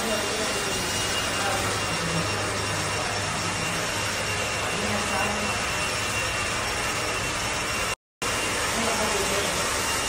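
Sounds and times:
hair dryer running: 0:00.0 - 0:10.0.

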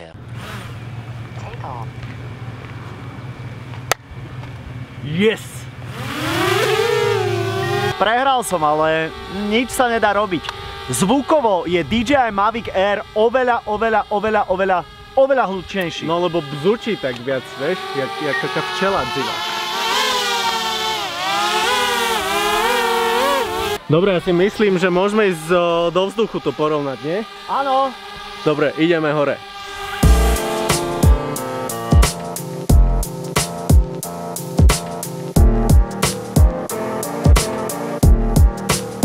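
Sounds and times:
drone propellers whining: 0:00.2 - 0:39.0
low hum: 0:06.0 - 0:19.4, 0:23.5 - 0:31.9.

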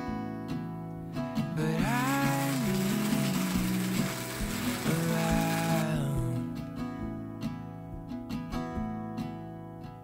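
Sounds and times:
acoustic guitar music: 0:00.0 - 0:10.0
hand coffee grinder grinding: 0:01.8 - 0:06.1.

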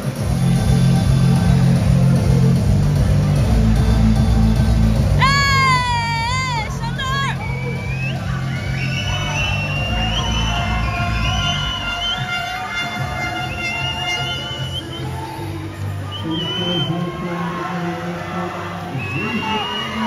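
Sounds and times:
music with heavy bass beat: 0:00.0 - 0:16.1
spectators cheering: 0:00.0 - 0:20.0.

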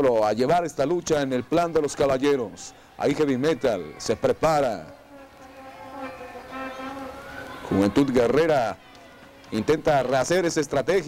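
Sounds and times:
buzzing drone: 0:05.0 - 0:07.7.

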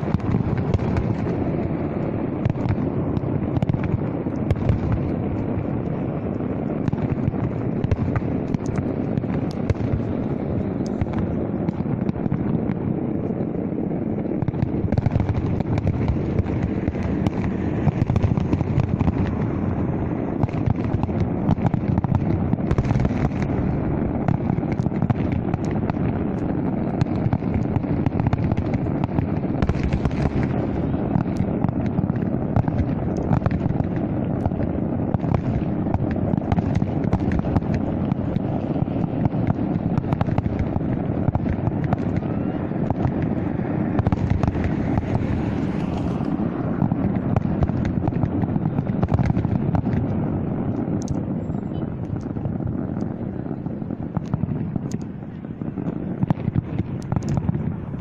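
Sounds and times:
fireworks bangs and crackling: 0:00.0 - 0:58.0
steady rumble: 0:00.0 - 0:58.0.

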